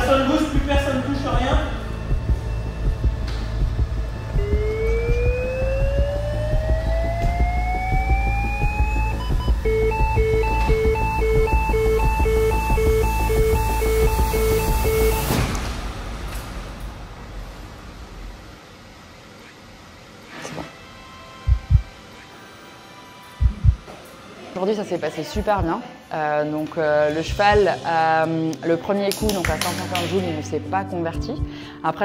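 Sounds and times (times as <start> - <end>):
alternating beeping: 0.0 - 15.5, 21.0 - 23.8, 25.4 - 25.8
defibrillator charging tone rising: 0.1 - 16.4, 20.8 - 23.9, 25.4 - 25.8.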